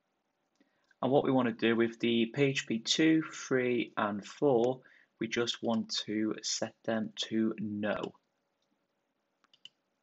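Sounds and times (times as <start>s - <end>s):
computer mouse clicks: 9.4s - 9.8s.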